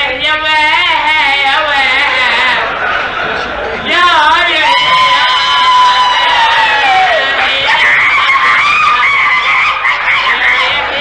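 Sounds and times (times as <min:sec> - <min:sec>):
overlapping voices: 0:00.0 - 0:11.0.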